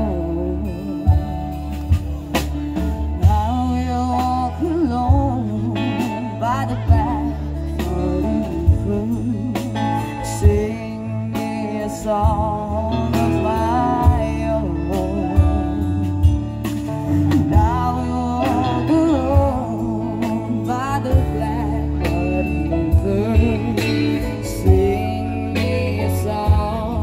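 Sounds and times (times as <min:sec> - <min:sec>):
bass line: 0:00.0 - 0:27.0
electric guitars: 0:00.0 - 0:27.0
keyboard: 0:00.0 - 0:27.0
woman singing lead: 0:00.0 - 0:27.0.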